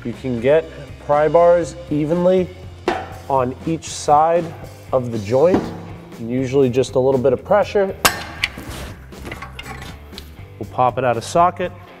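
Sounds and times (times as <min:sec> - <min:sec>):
pry bars clanging on metal: 0:08.0 - 0:10.1.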